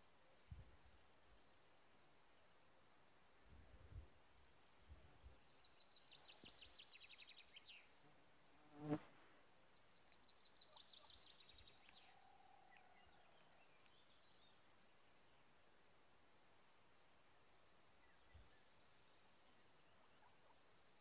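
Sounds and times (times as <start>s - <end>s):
fly buzzing past: 8.7s - 9.2s.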